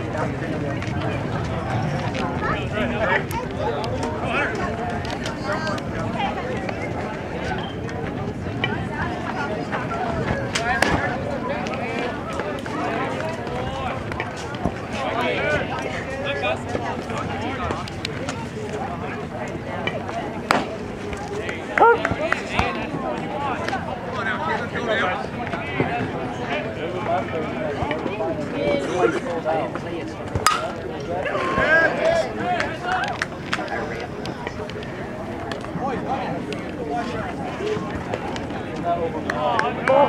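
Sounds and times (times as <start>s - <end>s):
background chatter: 0.0s - 40.0s
baseball bat cracking ball: 20.5s - 20.7s, 30.4s - 30.8s
spectators shouting: 30.4s - 33.2s.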